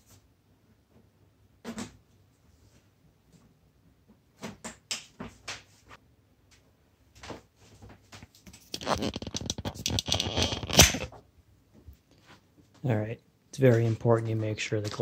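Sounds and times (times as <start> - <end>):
rustling and scraping: 7.2 - 11.2, 11.8 - 13.0.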